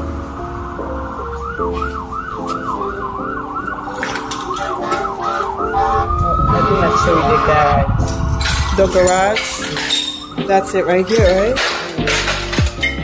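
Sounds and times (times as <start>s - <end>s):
background music: 0.0s - 13.0s
emergency vehicle siren: 0.2s - 12.2s.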